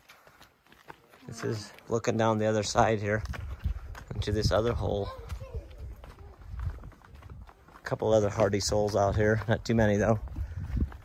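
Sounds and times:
footsteps on rock: 0.0 - 11.0
wind rumble on microphone: 2.7 - 7.6, 8.5 - 11.0.

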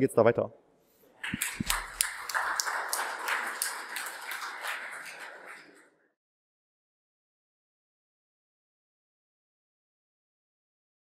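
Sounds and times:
audience applauding: 1.2 - 6.0.

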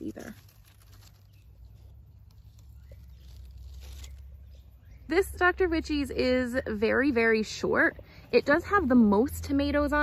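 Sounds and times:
leaves rustling: 0.0 - 6.0.

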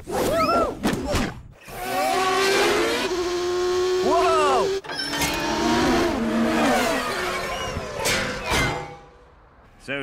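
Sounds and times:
racing car engine revving: 1.6 - 7.9.

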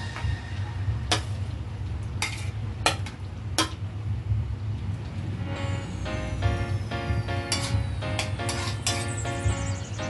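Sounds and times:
background music: 0.0 - 1.4, 5.3 - 10.0
steady low hum: 0.0 - 10.0
food scraped into pan: 2.2 - 2.6, 8.5 - 9.0.

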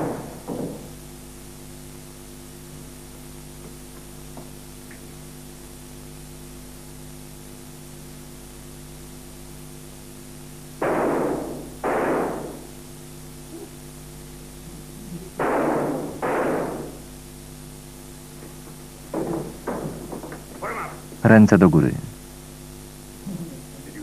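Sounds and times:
mains hum: 0.0 - 24.0
pistol shots echoing: 10.8 - 12.8.

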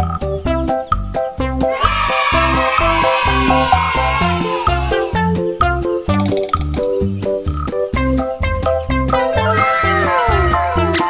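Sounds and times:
upbeat background music: 0.0 - 11.0.

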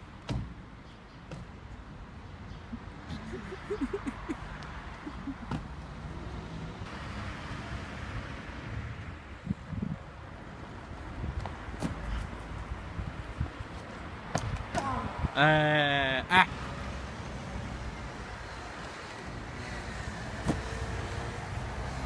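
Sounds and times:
outdoor street noise: 0.0 - 22.0.

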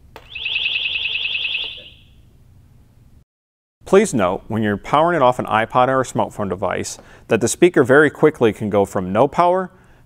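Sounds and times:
high pulsing alarm tone: 0.3 - 2.2.

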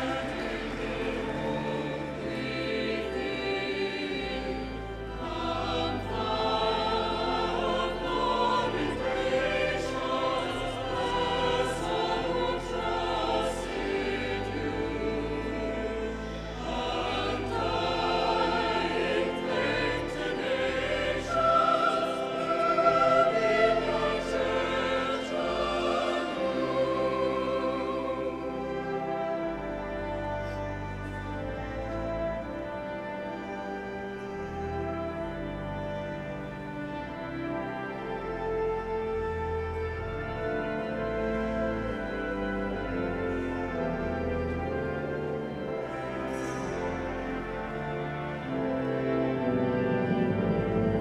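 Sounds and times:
choir and congregation singing hymn: 0.0 - 51.0
pipe organ chords: 0.0 - 51.0.

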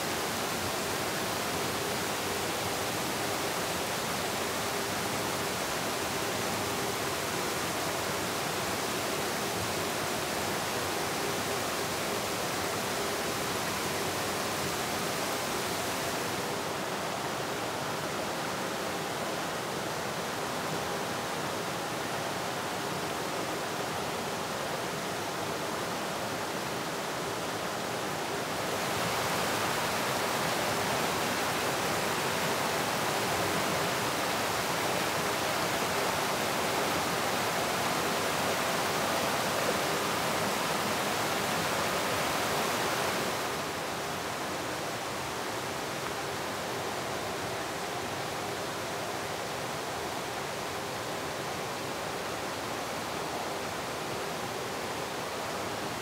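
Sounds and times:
stream rushing over rock: 0.0 - 56.0.

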